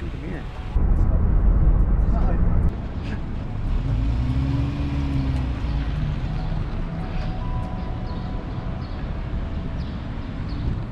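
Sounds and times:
motor vehicle engine rumble: 0.0s - 10.9s.

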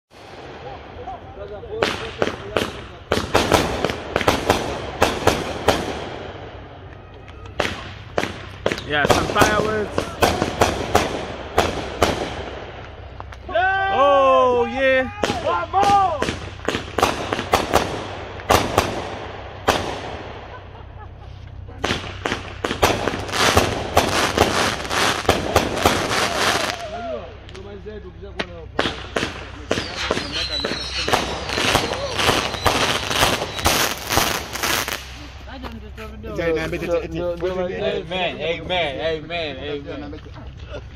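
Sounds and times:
fireworks bangs: 0.1s - 35.7s
thin whistle: 29.8s - 33.8s.

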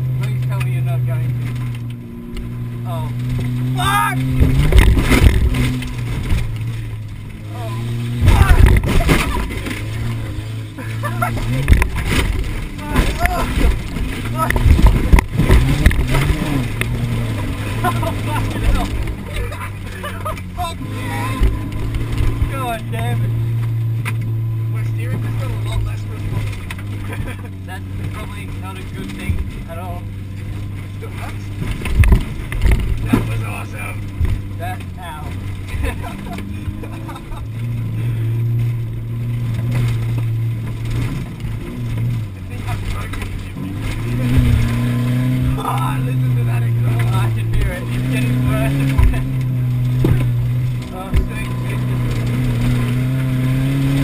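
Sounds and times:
car engine revving: 0.0s - 54.0s
car thumps and rattles over bumps: 0.0s - 54.0s.

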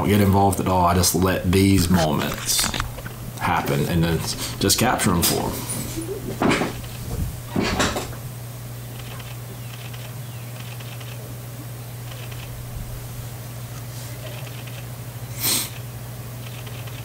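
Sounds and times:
low electrical hum: 0.0s - 17.0s
man breathing: 4.3s - 4.7s.

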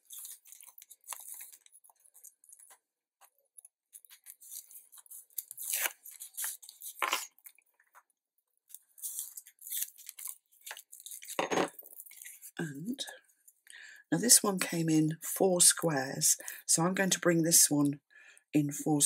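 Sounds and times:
paper crinkling and rustling: 0.0s - 12.6s.

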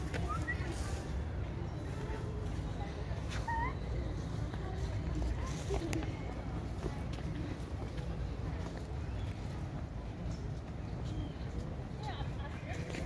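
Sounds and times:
distant background voices: 0.0s - 13.0s.

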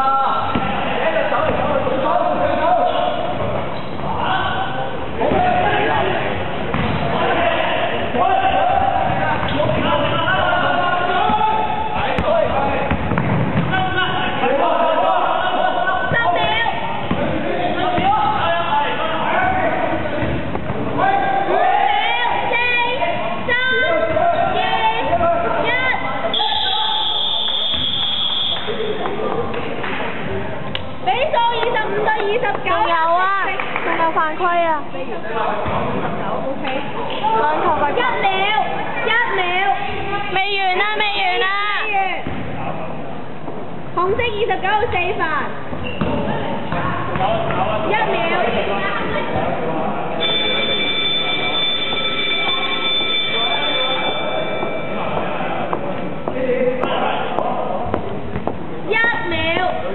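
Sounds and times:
players' voices: 0.0s - 59.9s
sports hall background noise: 0.0s - 59.9s
high-pitched whistle: 26.3s - 28.8s, 50.2s - 54.3s
high-pitched electronic buzzer: 50.2s - 54.9s.

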